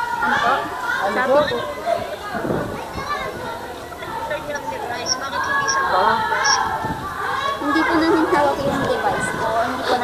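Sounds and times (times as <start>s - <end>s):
muffled voices talking: 0.0s - 10.0s.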